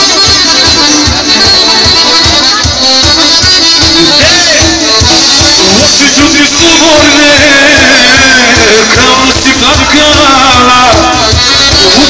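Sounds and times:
sliding melody line: 0.0 - 12.0
steady drum beat: 0.0 - 12.0.

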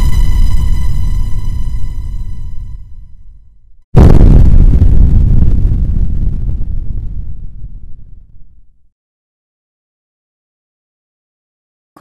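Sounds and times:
deep boom impact rumbling: 4.0 - 8.8.

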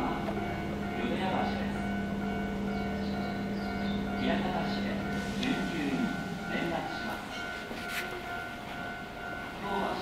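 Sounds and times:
electric train running: 0.0 - 10.0
steady high tone: 0.0 - 10.0.

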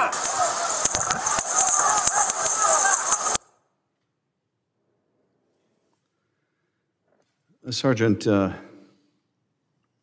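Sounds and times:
people shouting: 0.0 - 3.4
harsh crowd din: 0.0 - 3.6.

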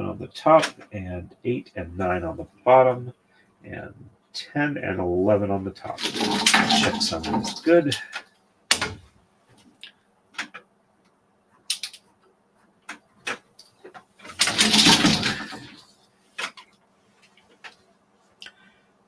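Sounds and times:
wooden bobbins clattering: 6.0 - 9.0, 13.2 - 15.8
wooden bobbins clicking: 6.0 - 9.0, 11.7 - 12.0, 12.9 - 15.8.

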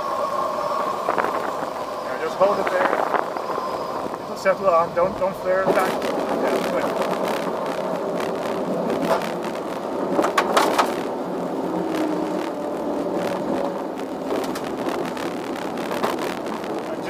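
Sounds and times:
air rushing over canopy: 0.0 - 17.0
glider wheel rumbling and rattling: 0.0 - 17.0.

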